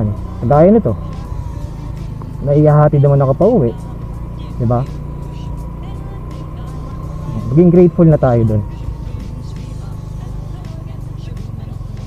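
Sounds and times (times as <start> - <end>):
road noise: 0.0 - 12.0
scooter engine droning: 0.0 - 12.0.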